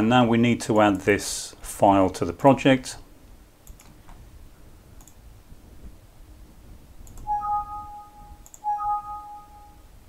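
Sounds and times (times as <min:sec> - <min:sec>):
two-note alert chime: 0:07.3 - 0:09.9.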